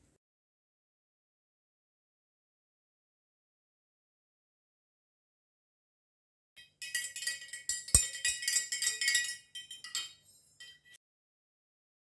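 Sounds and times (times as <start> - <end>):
spoon clinking against glass: 6.6 - 11.0
spoon knocking glass: 6.6 - 11.0.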